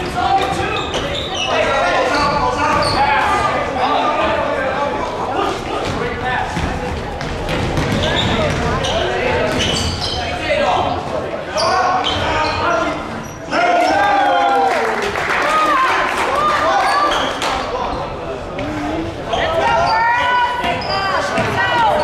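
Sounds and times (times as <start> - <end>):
sneakers squeaking: 0.0 - 3.5, 5.7 - 14.0, 16.8 - 22.0
echoing voices: 14.8 - 22.0.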